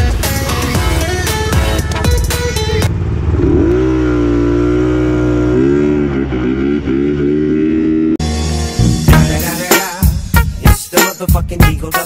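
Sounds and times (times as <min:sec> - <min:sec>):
music: 0:00.0 - 0:02.9, 0:08.2 - 0:12.0
scooter engine accelerating: 0:00.5 - 0:08.2.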